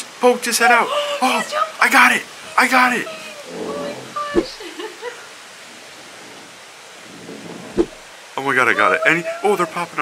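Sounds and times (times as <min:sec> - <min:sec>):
water: 0:00.0 - 0:10.0
wind: 0:00.0 - 0:10.0.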